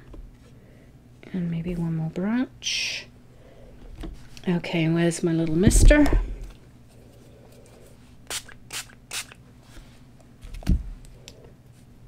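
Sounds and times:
spray mister puffing water: 8.3 - 9.4.

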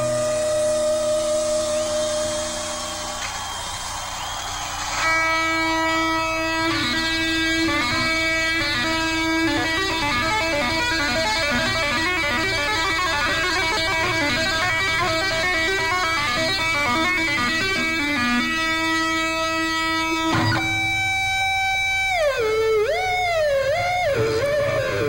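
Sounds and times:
distorted electric guitar solo: 0.0 - 3.6, 4.7 - 25.0.

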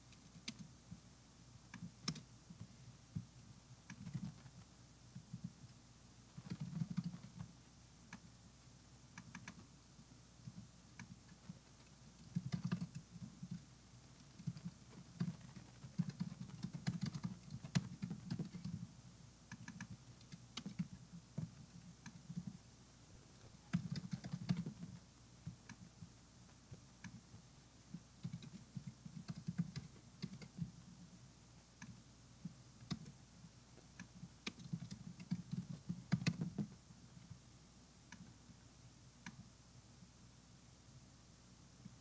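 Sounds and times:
keyboard typing clicks: 1.7 - 2.3, 3.8 - 4.5, 6.4 - 7.5, 9.1 - 9.6, 12.2 - 13.6, 14.2 - 18.8, 19.5 - 22.6, 23.7 - 25.8, 28.2 - 30.7, 34.0 - 36.7.

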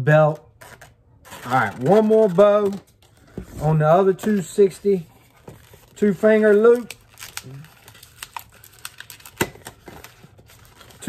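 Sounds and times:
balloon rubber squeaks: 0.5 - 2.3.

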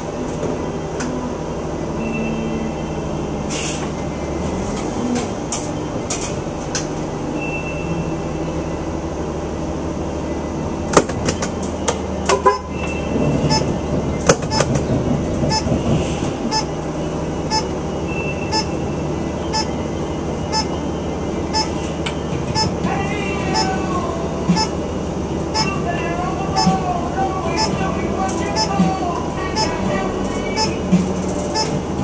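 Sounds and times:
car engine: 0.0 - 32.0
road noise inside car: 0.0 - 32.0.

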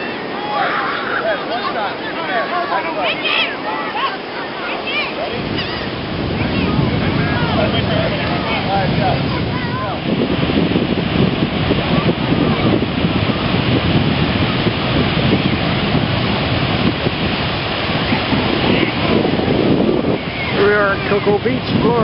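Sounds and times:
ocean surf breaking: 0.0 - 22.0
wind buffeting microphone: 0.0 - 22.0
faint high bending calls: 5.0 - 6.0.

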